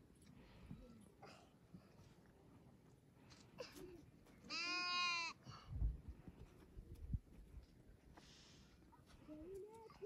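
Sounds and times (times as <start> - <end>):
goat kid bleating: 4.4 - 5.4.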